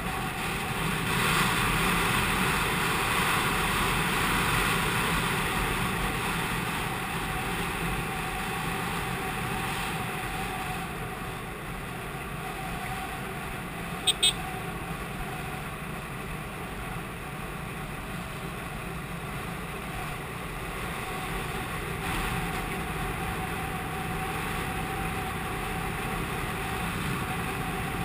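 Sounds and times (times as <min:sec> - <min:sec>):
motorcycle engine cruising: 0:00.0 - 0:28.0
horn beeps: 0:14.0 - 0:14.5.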